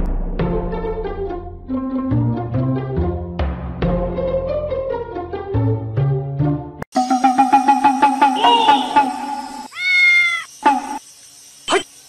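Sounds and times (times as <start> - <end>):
cat meowing: 9.7 - 10.5.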